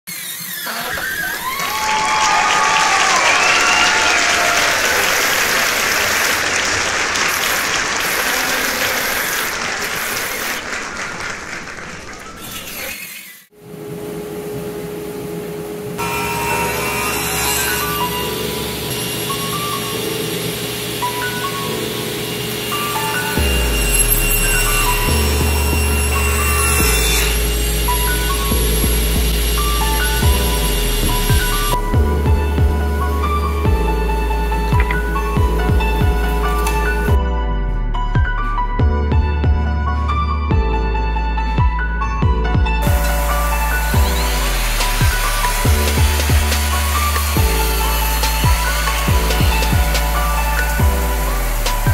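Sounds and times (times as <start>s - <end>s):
circular saw cutting wood: 0.0s - 10.8s, 12.3s - 13.6s, 16.0s - 37.2s, 42.8s - 51.9s
background music: 16.0s - 51.9s
heavy bass line: 23.4s - 51.9s.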